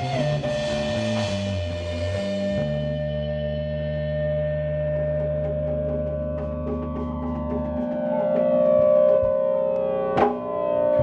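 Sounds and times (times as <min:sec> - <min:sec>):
electric guitar ringing note: 0:03.0 - 0:11.0.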